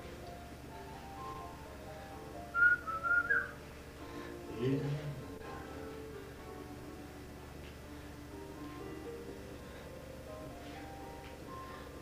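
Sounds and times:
soft background music: 0:00.0 - 0:12.0
person whistling high notes: 0:02.6 - 0:03.6.

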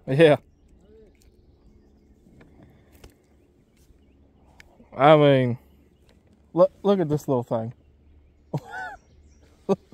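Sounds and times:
faint small clicks: 0:02.3 - 0:04.8.

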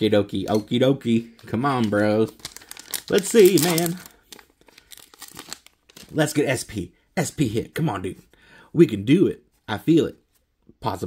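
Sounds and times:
foil pack tearing and crinkling: 0:02.3 - 0:06.1.

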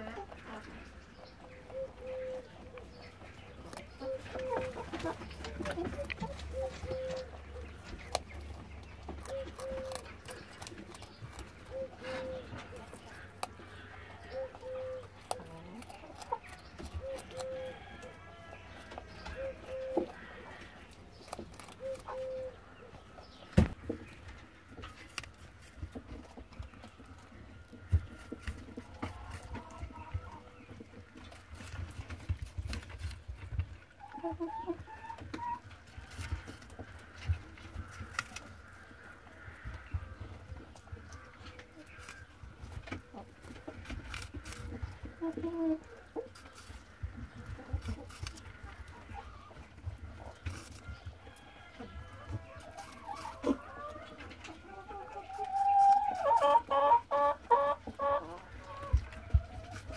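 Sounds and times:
rabbit chewing carrot: 0:00.0 - 0:59.9.

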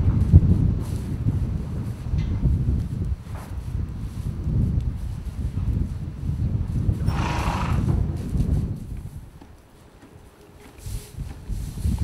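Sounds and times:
horse breathy call: 0:07.1 - 0:07.9.

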